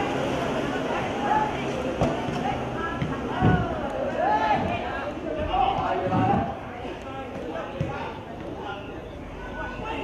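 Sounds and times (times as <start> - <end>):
players and coaches shouting: 2.8 - 6.8.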